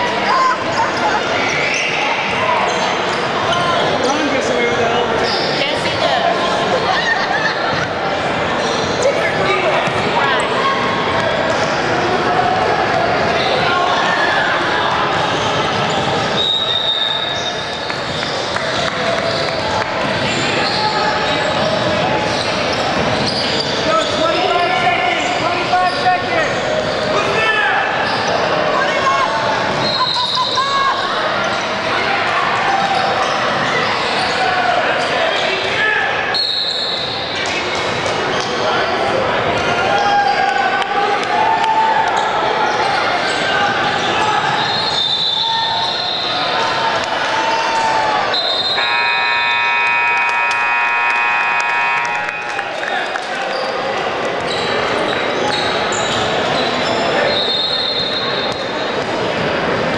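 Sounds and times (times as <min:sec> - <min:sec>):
sneakers squeaking: 0:00.1 - 0:27.2, 0:28.0 - 0:31.9, 0:32.8 - 0:35.5, 0:42.1 - 0:46.6, 0:53.4 - 0:59.5
people shouting: 0:46.5 - 0:52.7.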